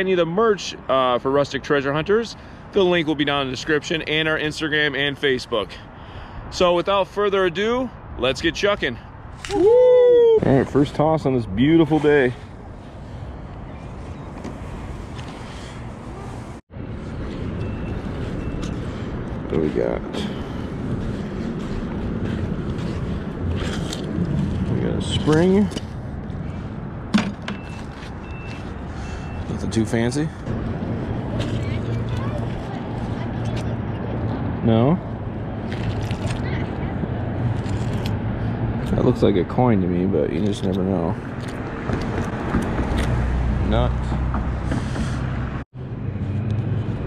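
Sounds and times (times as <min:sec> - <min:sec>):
motor traffic rumble: 0:00.0 - 0:47.0.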